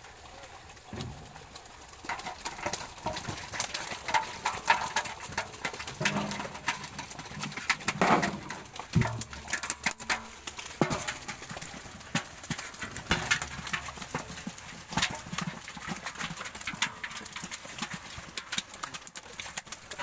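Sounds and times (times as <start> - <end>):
fish knocking and slapping: 0.8 - 20.0.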